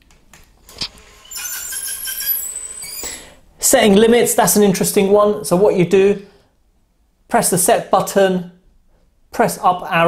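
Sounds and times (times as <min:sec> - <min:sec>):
roller blind motor whine: 0:01.0 - 0:03.2.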